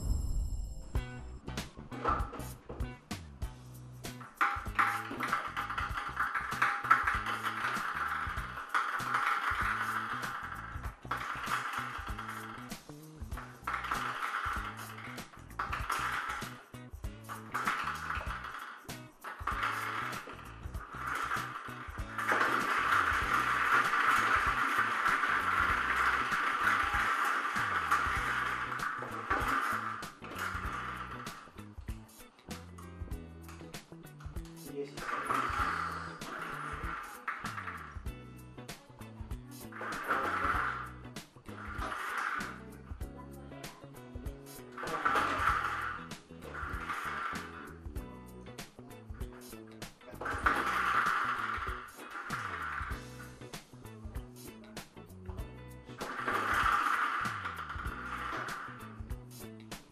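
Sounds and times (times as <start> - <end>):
balls tumbling in turning drum: 1.0 - 59.9
plastic balls clicking and rattling: 4.0 - 43.7, 44.4 - 48.0, 48.6 - 55.1, 55.8 - 59.9.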